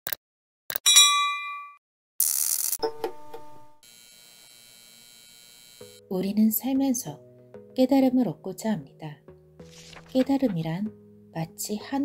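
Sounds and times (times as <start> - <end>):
notification bell ding: 0.9 - 1.8.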